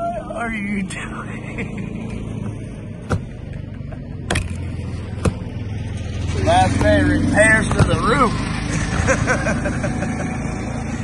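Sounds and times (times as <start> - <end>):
vehicle engine droning: 0.0 - 11.0
man laughing: 1.3 - 2.2, 8.7 - 10.7.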